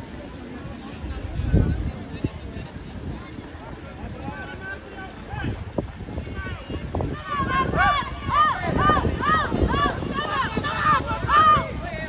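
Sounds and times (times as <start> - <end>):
wind buffeting microphone: 0.0 - 12.0
spectators calling out: 6.5 - 12.0.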